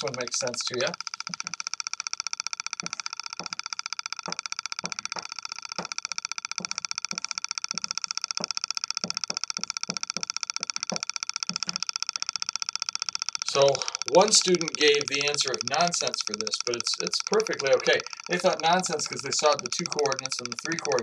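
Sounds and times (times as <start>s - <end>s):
pulsing hiss: 13.4s - 21.0s.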